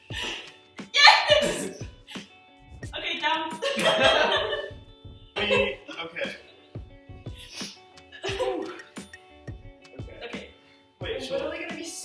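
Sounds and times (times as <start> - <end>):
quiet background music: 0.0 - 12.0
person crying out with strain: 1.0 - 1.8.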